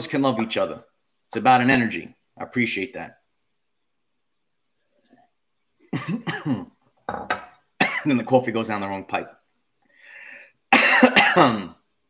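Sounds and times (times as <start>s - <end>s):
man coughing and clearing throat: 5.9s - 6.8s, 7.8s - 8.3s, 10.7s - 11.8s
short breath in: 9.8s - 10.6s.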